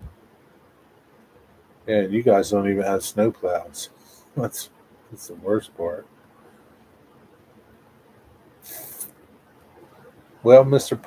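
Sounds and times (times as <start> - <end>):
sharp breath or sniff: 8.6 - 9.1.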